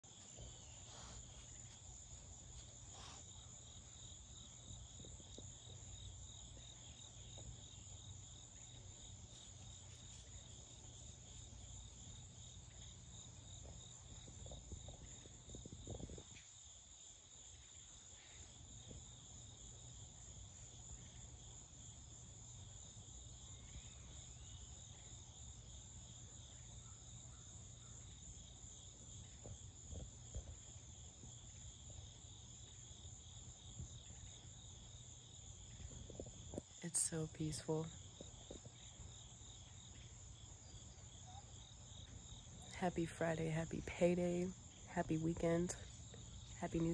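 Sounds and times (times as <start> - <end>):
insects trilling: 0.0 - 46.9.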